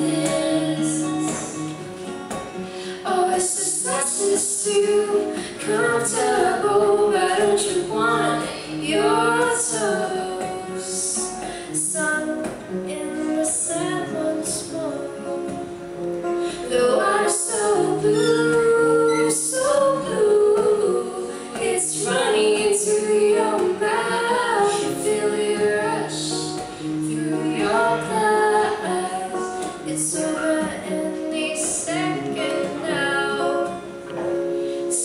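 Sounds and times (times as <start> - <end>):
woman singing: 0.0 - 1.8, 2.8 - 35.0
strummed acoustic guitars: 0.0 - 35.0.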